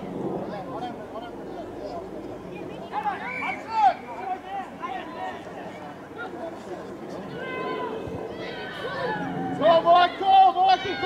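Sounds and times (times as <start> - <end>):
distant shouts and calls: 0.0 - 11.0.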